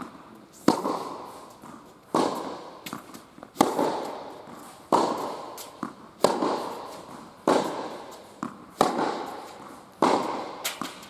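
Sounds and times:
tennis ball hit echoing indoors: 0.0 - 11.0.

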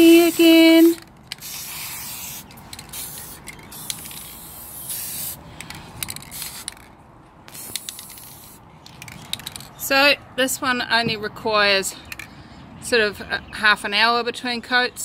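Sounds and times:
aerosol spray can hissing: 0.1 - 5.4, 7.5 - 8.6.

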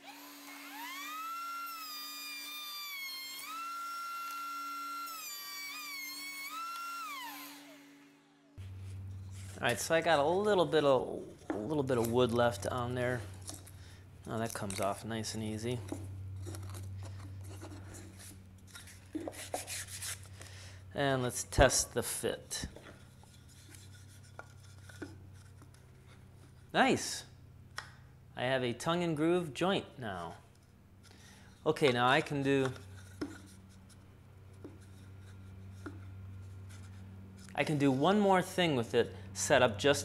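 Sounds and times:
steady low hum: 8.4 - 40.0
sandpaper rubbing wood: 19.2 - 20.3.

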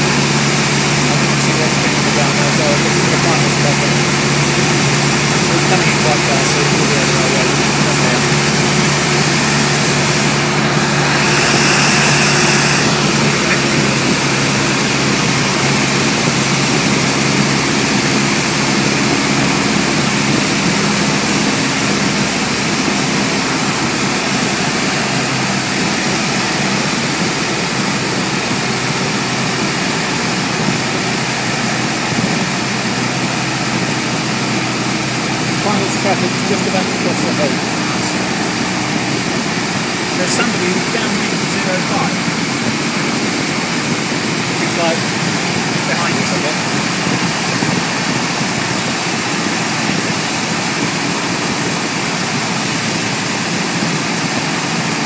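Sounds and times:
light aircraft engine droning: 0.0 - 55.0.

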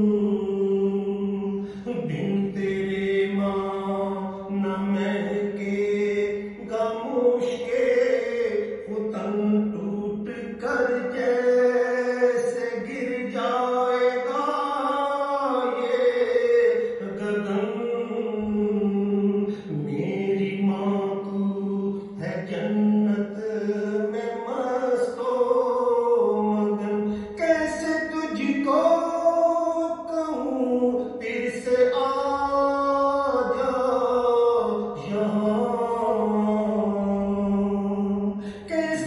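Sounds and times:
man singing slow melody: 0.0 - 39.0.

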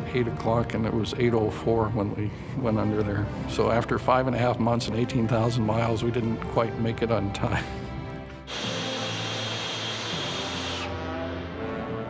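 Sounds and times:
steam whistle blowing: 8.5 - 11.4.

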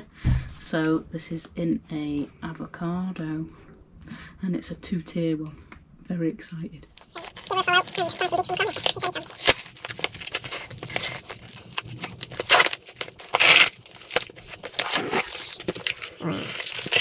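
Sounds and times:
paper envelope tearing: 7.0 - 17.0
paper rustling and crinkling: 7.0 - 17.0.

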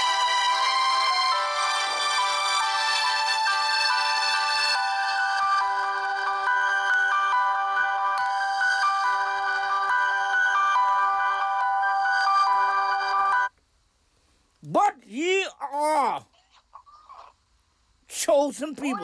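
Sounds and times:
electronic ringtone tune: 0.5 - 13.5.

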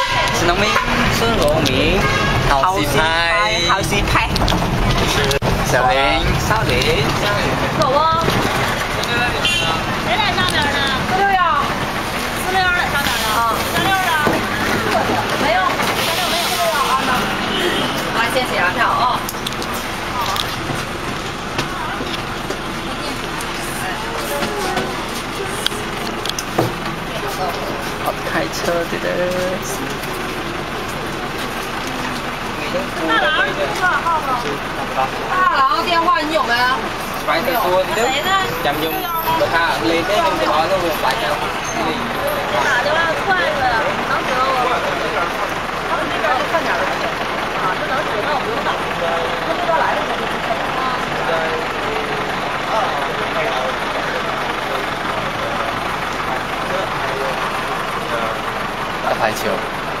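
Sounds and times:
indistinct talk: 0.0 - 60.0
vehicle engine and road noise: 0.0 - 60.0.

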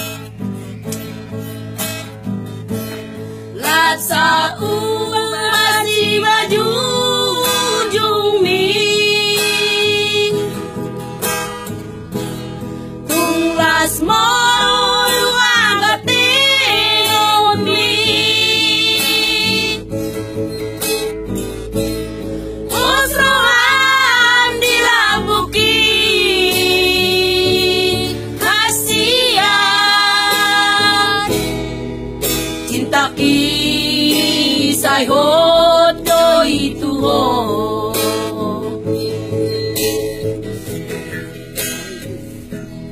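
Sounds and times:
acoustic guitar: 0.0 - 42.9
women singing together: 3.6 - 10.7, 13.1 - 19.8, 22.7 - 31.6, 32.6 - 39.0.

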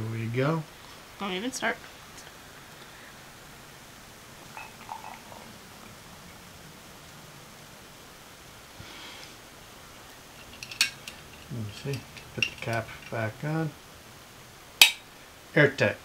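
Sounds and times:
faint fizzing hiss: 0.0 - 16.0
steady low hiss: 0.0 - 16.0
carbonated water pouring into glass: 4.4 - 6.4.

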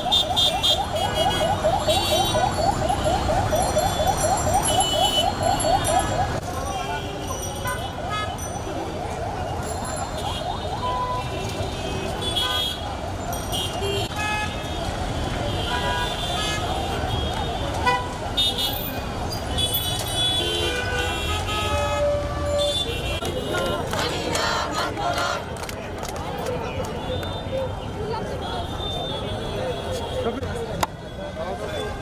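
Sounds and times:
crowd voices: 0.0 - 32.0
traffic noise: 0.0 - 32.0.

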